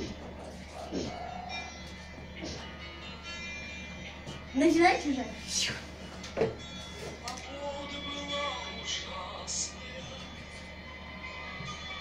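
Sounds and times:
quiet background music: 0:00.0 - 0:12.0
person narrating a story: 0:04.6 - 0:05.8.

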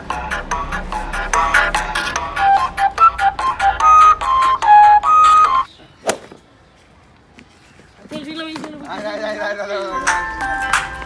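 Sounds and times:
flute-like tune: 0:01.1 - 0:05.7
sharp smack: 0:06.0 - 0:06.4.

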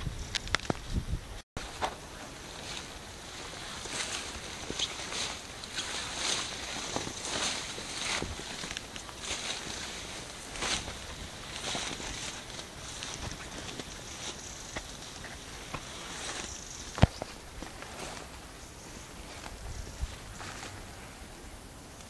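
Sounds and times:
footsteps through undergrowth: 0:01.6 - 0:21.4
swishes of vegetation: 0:01.6 - 0:22.0.

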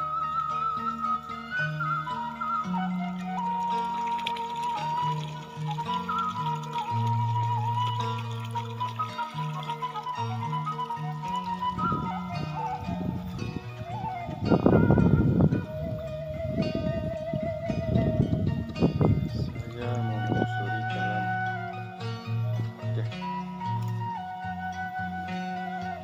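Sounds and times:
bamboo flute melody: 0:00.0 - 0:26.0
plucked zither notes: 0:00.0 - 0:26.0.

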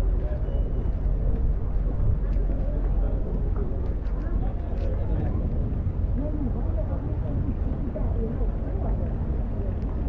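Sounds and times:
faint voices of passers-by: 0:00.0 - 0:10.0
steady low rumble: 0:00.0 - 0:10.0.

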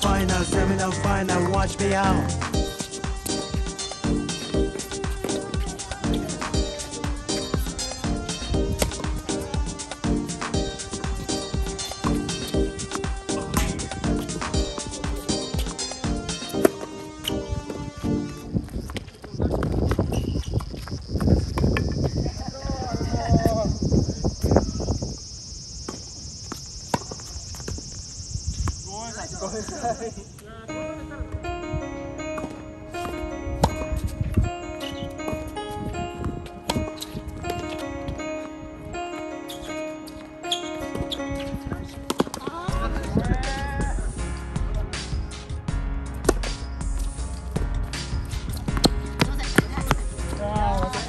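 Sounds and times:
song playing: 0:00.0 - 0:18.6, 0:30.7 - 0:51.0
night insects chirring: 0:00.0 - 0:30.8
racket hitting tennis ball: 0:08.8 - 0:10.6, 0:11.5 - 0:17.3, 0:32.4 - 0:34.0, 0:36.6 - 0:37.8, 0:40.1 - 0:42.6.

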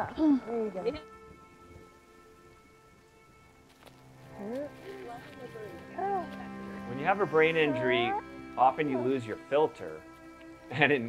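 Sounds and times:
light rain falling: 0:00.0 - 0:10.8
soft held chords of music: 0:00.0 - 0:11.0.

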